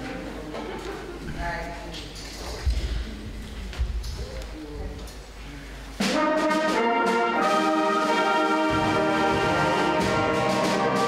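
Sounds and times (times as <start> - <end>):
hall room noise: 0.0 - 11.0.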